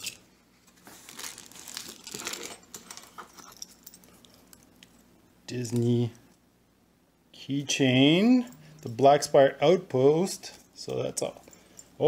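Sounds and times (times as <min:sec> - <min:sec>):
packaging crinkling and rustling: 0:00.0 - 0:04.9.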